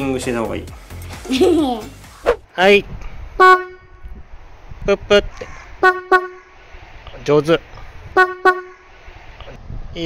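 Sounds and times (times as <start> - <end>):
marine horn toots: 3.4 - 4.2, 5.8 - 6.6, 8.1 - 8.9.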